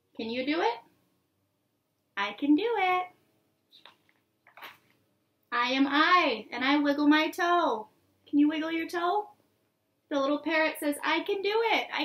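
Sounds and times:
book page turning rustle: 3.8 - 5.0.

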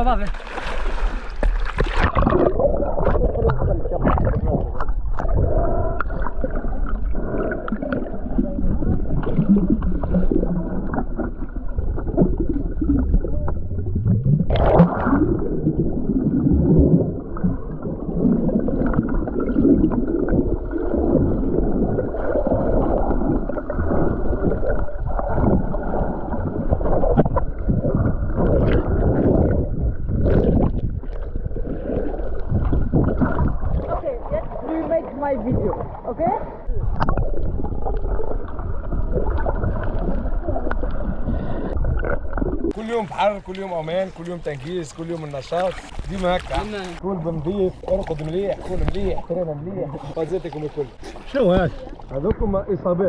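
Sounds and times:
water splash: 0.0 - 52.5
bubbling and gurgling: 0.0 - 53.0
underwater water noise: 0.0 - 53.0.

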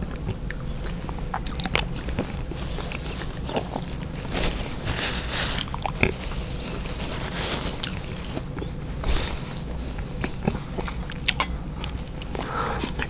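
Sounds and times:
chewing: 0.0 - 4.3, 4.9 - 13.0
breathing: 12.4 - 13.0.

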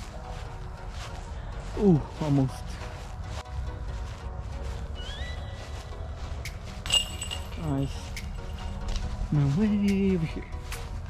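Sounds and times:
footsteps on grass: 0.0 - 11.0
low wind rumble: 0.0 - 11.0
sharp metallic clink: 6.8 - 8.2.

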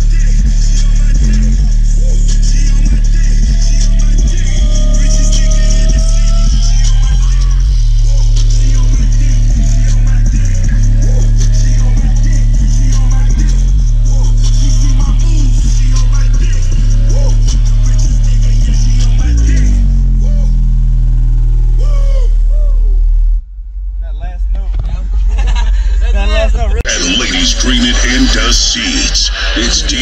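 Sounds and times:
loud rap music with deep bass: 0.0 - 22.8, 24.0 - 30.0.

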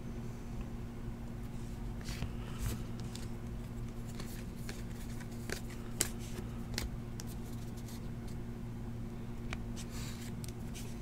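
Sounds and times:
trading cards handled: 2.0 - 8.4.

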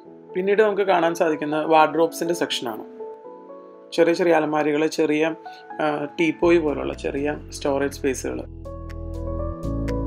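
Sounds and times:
background music: 0.0 - 10.0
person talking: 0.3 - 3.0, 3.9 - 8.5.

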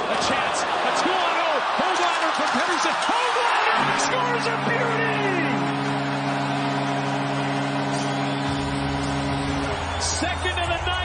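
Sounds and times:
crowd cheering: 0.0 - 11.0
arena goal horn blaring: 3.0 - 11.0.

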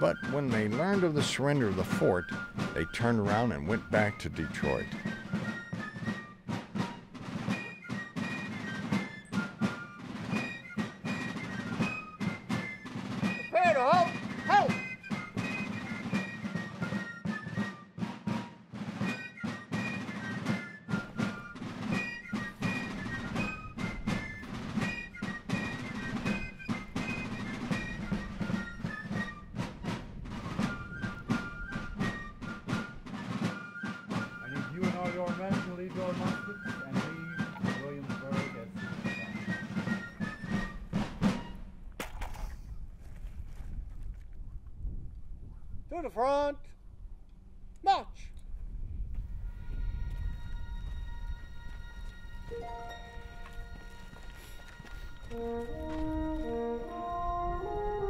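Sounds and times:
rapid snare drum strokes: 0.0 - 41.6
high fife melody: 52.4 - 54.1, 55.2 - 58.0.

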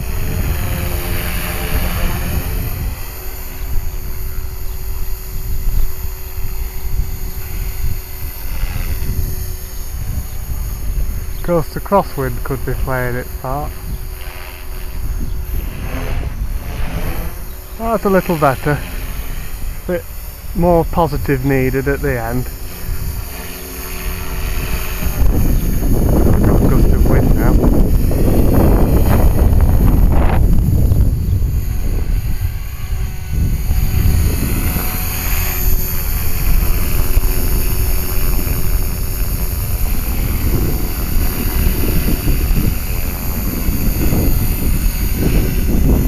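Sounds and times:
electric motor whine: 0.0 - 46.0
helicopter rotor whirring: 0.0 - 46.0
wind buffeting microphone: 0.0 - 46.0.

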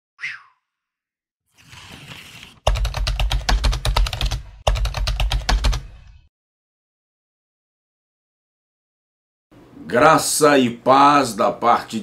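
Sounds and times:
fast sharp clicks: 2.7 - 5.9.

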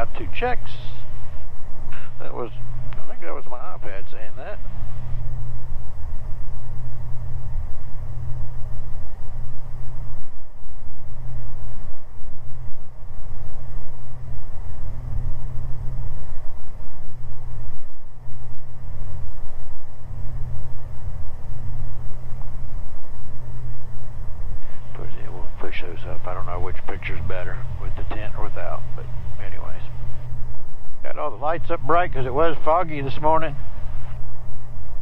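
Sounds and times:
pulsing propeller engine drone: 0.0 - 35.0.

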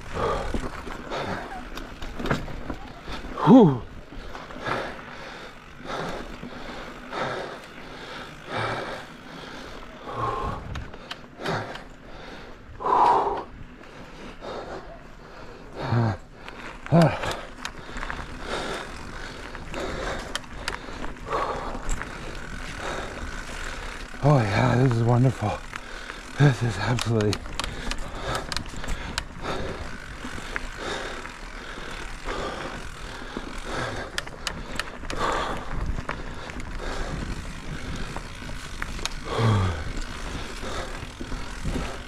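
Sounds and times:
bike tyres rolling on dirt: 0.0 - 42.0
rider vocal sounds: 0.1 - 10.7, 15.8 - 17.6, 24.0 - 28.5.

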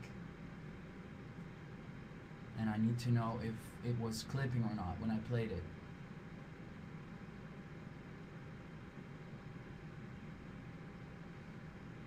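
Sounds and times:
faint microphone hiss: 0.0 - 12.0.

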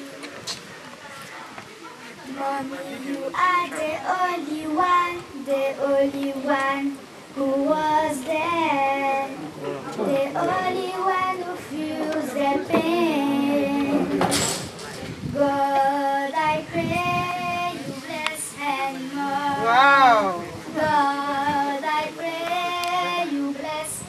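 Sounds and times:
girl singing into microphone: 2.2 - 14.5, 15.2 - 24.0.

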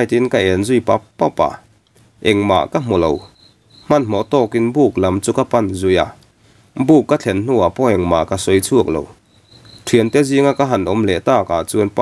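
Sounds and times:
person narrating: 2.2 - 3.3, 3.9 - 6.2, 9.8 - 12.0
cricket trill: 2.2 - 5.9, 7.4 - 12.0.

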